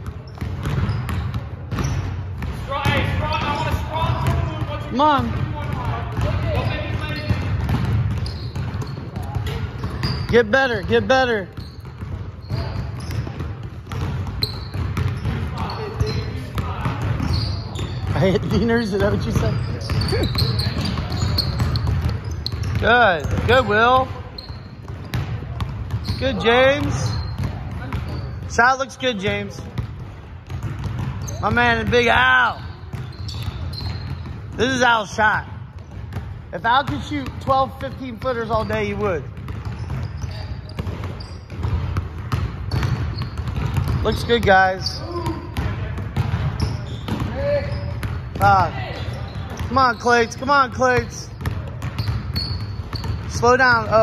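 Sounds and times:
basketballs bouncing on wooden floor: 0.0 - 54.0
players' voices: 0.2 - 54.0.

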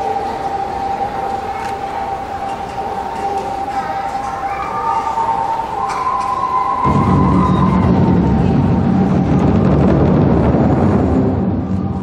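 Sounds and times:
drums in low roll: 6.9 - 12.0.

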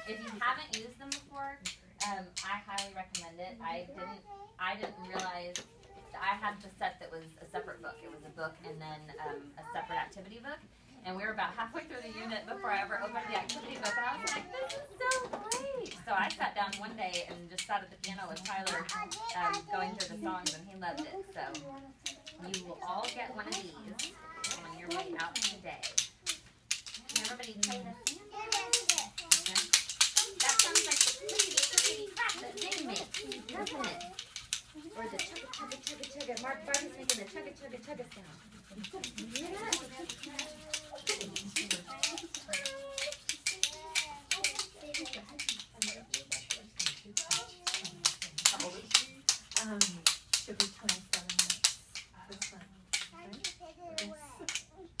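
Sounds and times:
children babbling: 0.0 - 0.4, 23.0 - 25.2, 27.2 - 37.5, 39.0 - 45.7
women chattering: 0.0 - 1.0, 2.0 - 21.7, 27.0 - 28.2, 29.2 - 43.1, 44.8 - 53.4
adults and toddlers talking and chanting: 0.0 - 55.0
hand percussion clicks and taps: 0.1 - 3.4, 13.0 - 55.0
sharp taps and claps: 38.9 - 54.7.

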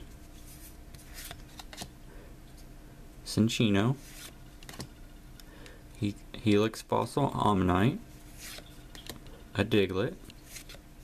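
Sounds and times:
cards sliding against each other: 0.2 - 1.9, 4.0 - 4.9, 8.3 - 9.4, 10.3 - 10.8.

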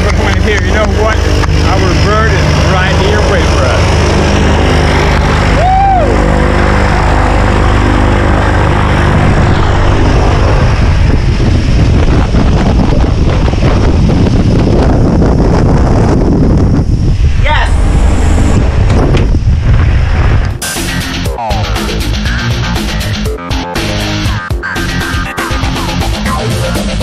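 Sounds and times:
propeller engine droning: 0.0 - 27.0
propeller wash buffeting microphone: 0.0 - 27.0.

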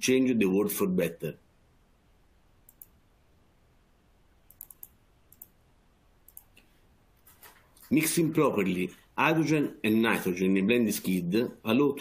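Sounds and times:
faint short clicks: 4.5 - 5.6.

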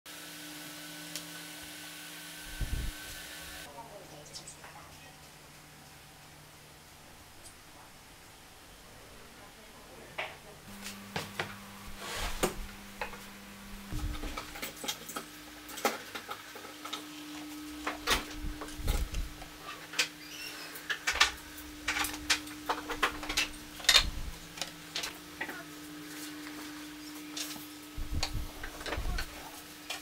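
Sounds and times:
faint steady hum: 2.4 - 29.5.

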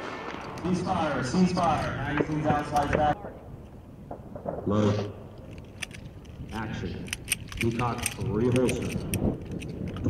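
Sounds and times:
metallic pistol clicks: 5.4 - 10.0.

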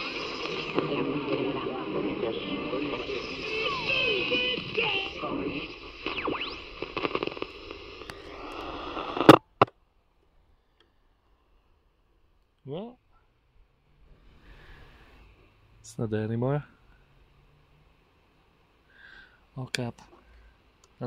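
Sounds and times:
voice on am radio: 0.0 - 7.4
radio tuning whistles: 0.0 - 9.6.

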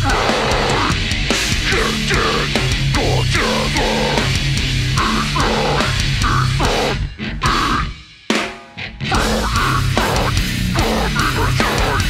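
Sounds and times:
heavy band playing live: 0.0 - 12.0.

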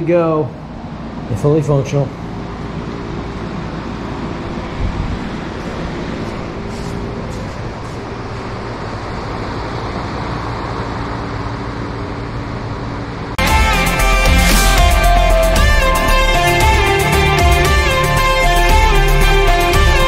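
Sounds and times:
electric fan whooshing: 0.0 - 20.0.

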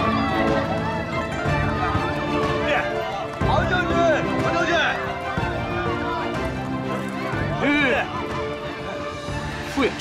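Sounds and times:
horses hooves clopping: 0.0 - 9.2
crowd shouting: 0.0 - 9.8
dramatic background music: 0.0 - 10.0.

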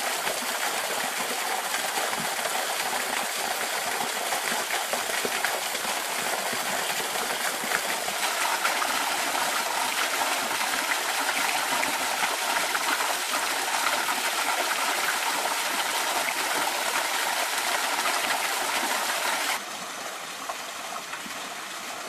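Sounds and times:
waterfall splashing into pool: 0.0 - 22.0.

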